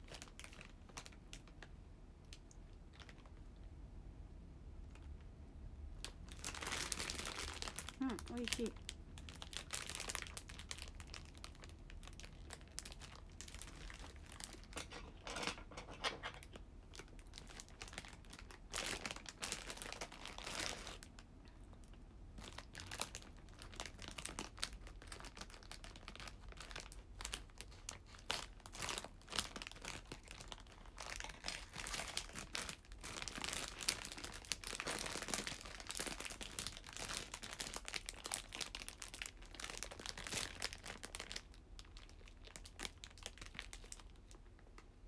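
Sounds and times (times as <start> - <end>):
plastic wrapper crinkling: 0.0 - 1.7, 2.3 - 3.5, 6.0 - 45.0.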